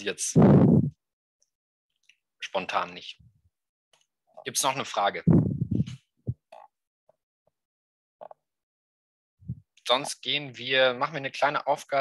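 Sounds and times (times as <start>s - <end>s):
mouth noise: 0.3s - 1.0s.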